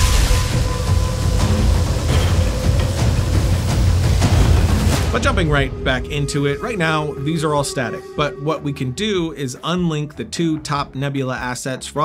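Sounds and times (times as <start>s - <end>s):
hissing crackle: 0.0s - 5.6s
dense low rumble: 0.0s - 9.7s.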